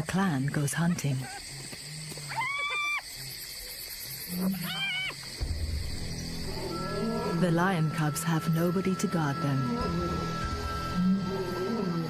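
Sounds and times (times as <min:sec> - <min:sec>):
hyena whining calls: 0:02.3 - 0:03.1, 0:04.3 - 0:05.3.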